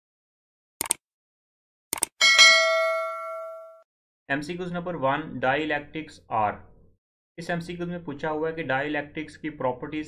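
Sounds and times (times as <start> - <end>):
mouse double click: 0.8 - 1.0
notification bell ding: 2.2 - 3.8.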